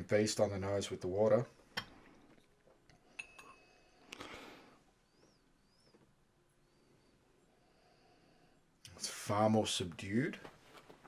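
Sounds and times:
glass tumbler clinking: 3.1s - 3.7s.

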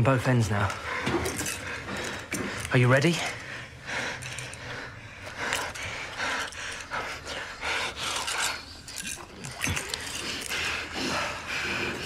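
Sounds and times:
quick heavy breathing: 0.7s - 12.0s.

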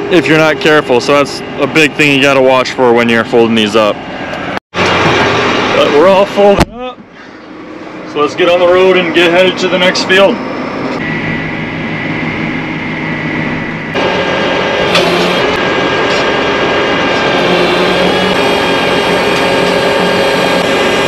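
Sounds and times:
engine whine: 0.0s - 21.0s
tractor engine running: 0.0s - 21.0s.

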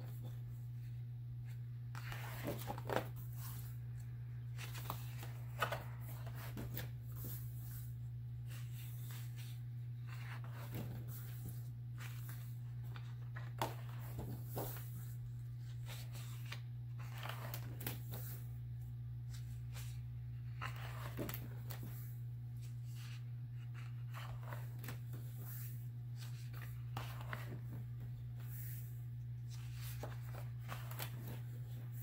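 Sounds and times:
steady low hum: 0.0s - 32.0s
paper pages rustling: 0.1s - 18.5s, 19.2s - 32.0s.

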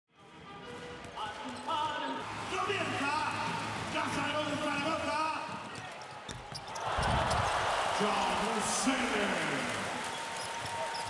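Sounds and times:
music: 0.1s - 5.8s
crowd noise: 0.7s - 11.0s.

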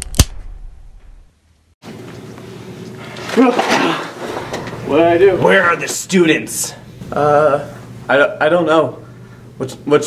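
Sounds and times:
sharp crack: 0.0s - 1.3s.

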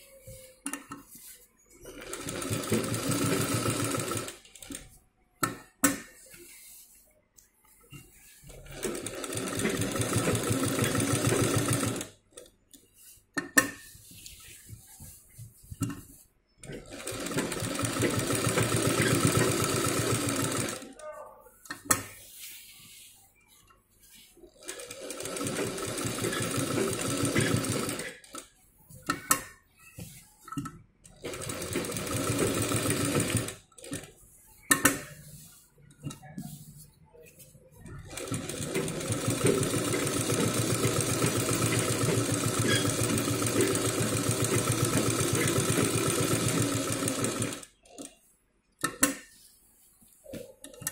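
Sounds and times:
sewing machine stitching: 1.9s - 5.6s, 8.0s - 12.2s, 16.6s - 20.8s, 24.5s - 28.6s, 31.1s - 34.2s, 37.9s - 48.2s
handling of fabric: 12.7s - 20.8s, 21.5s - 28.0s, 31.3s - 48.3s.

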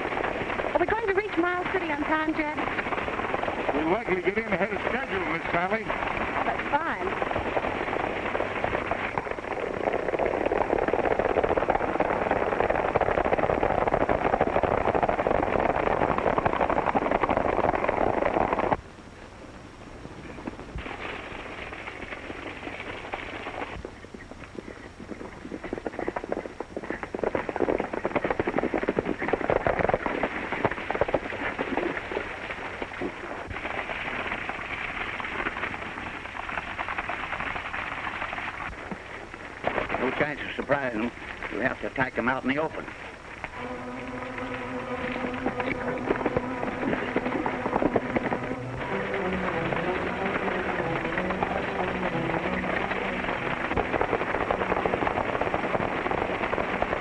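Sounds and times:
horse hooves clattering: 0.0s - 18.8s, 20.1s - 57.0s
wheels rattling: 0.0s - 18.8s.

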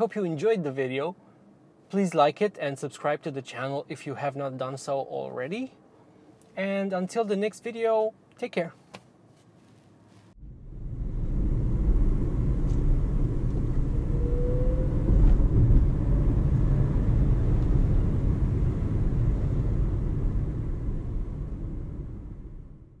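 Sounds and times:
road and tyre rumble in car cabin: 9.1s - 23.0s
faint rising electric motor whine: 10.4s - 22.7s.

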